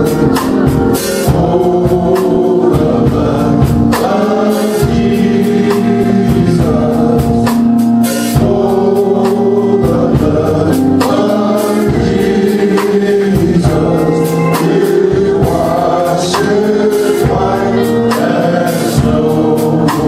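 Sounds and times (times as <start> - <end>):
men singing gospel in harmony: 0.0 - 20.0.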